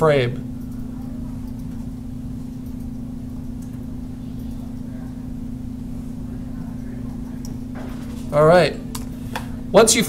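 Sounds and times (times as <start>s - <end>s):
steady low electrical hum: 0.0s - 10.0s.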